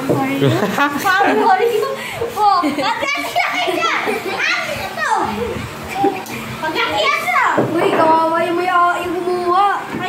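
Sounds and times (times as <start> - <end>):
children talking and calling out: 0.0 - 10.0.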